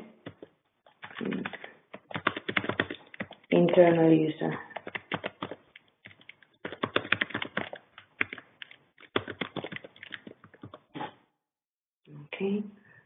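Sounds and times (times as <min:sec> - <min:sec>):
typing on computer keyboard: 0:00.2 - 0:04.0, 0:04.7 - 0:10.8.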